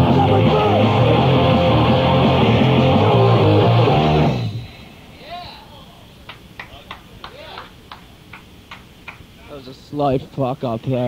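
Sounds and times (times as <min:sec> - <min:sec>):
band playing guitars and drums: 0:00.0 - 0:04.6.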